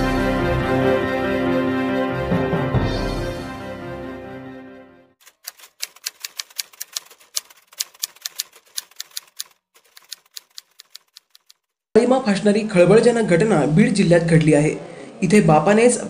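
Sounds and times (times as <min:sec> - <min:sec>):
theme music: 0:00.0 - 0:05.1
typewriter keystroke clicks: 0:05.2 - 0:11.7.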